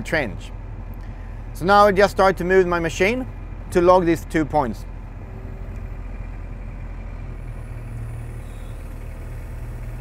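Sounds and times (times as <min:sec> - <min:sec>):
diesel engine humming: 0:00.0 - 0:10.0.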